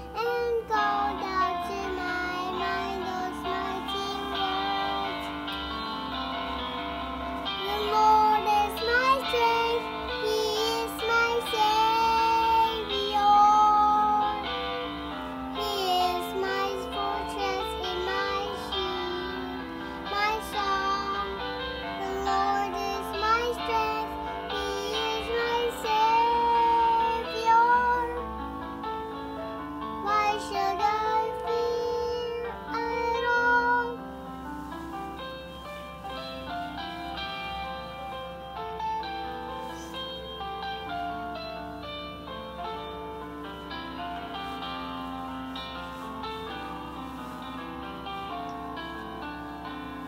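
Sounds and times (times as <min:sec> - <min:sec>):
girl singing: 0:00.0 - 0:05.9, 0:07.4 - 0:14.5, 0:15.2 - 0:28.6, 0:29.9 - 0:34.2
backing track music: 0:00.0 - 0:50.0
instrumental accompaniment: 0:00.0 - 0:50.0.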